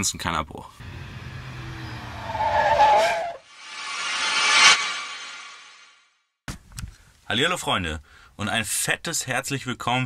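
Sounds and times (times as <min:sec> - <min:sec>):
car tires skidding: 0:00.9 - 0:03.4
rising rushing noise: 0:02.1 - 0:06.0.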